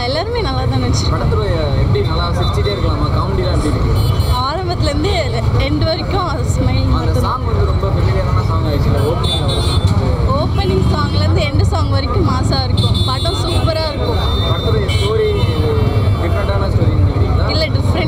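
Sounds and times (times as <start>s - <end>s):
road traffic rumble: 0.0s - 18.0s
voices talking: 0.0s - 18.0s.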